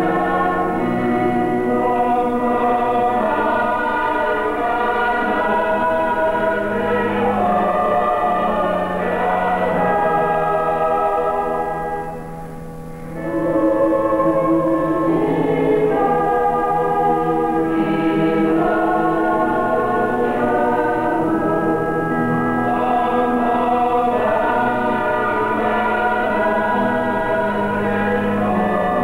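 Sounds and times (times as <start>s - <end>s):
mixed choir singing: 0.0s - 12.6s, 13.2s - 29.0s.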